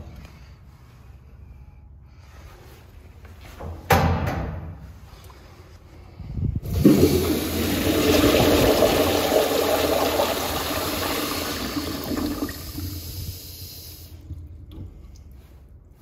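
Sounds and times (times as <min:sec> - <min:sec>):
toilet flushing: 0:06.6 - 0:14.9.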